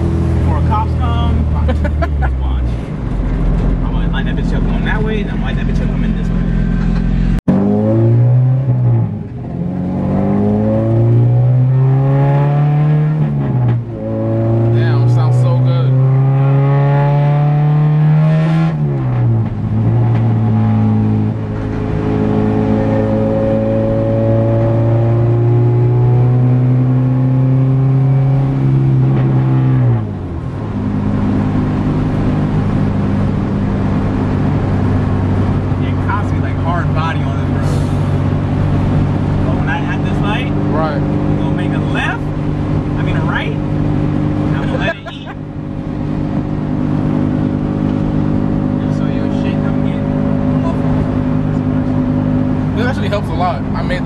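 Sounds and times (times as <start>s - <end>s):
car engine revving at full throttle: 0.0s - 54.0s.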